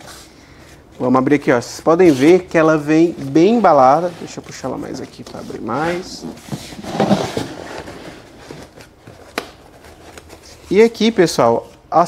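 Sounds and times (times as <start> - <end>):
cardboard and foam rustling: 1.8 - 11.8.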